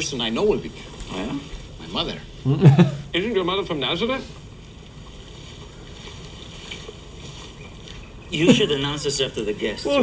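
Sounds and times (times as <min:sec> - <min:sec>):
low rumbling wind-like ambience: 0:00.0 - 0:10.0.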